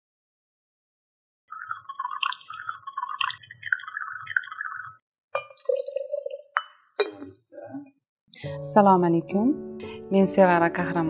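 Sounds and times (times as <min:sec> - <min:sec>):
liquid pouring into ceramic bowl: 0:01.5 - 0:07.2.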